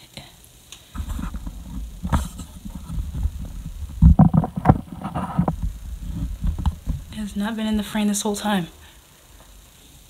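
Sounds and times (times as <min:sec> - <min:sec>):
knocks on microphone: 0:01.0 - 0:07.2
microphone handling rumble: 0:01.0 - 0:08.3.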